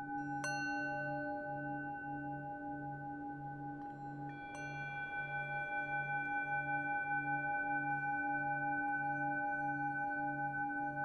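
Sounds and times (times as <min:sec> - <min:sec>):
singing bowl drone: 0:00.0 - 0:11.0.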